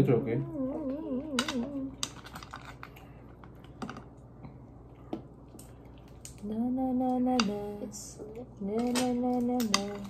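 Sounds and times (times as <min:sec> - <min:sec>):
person humming: 0:00.1 - 0:02.0.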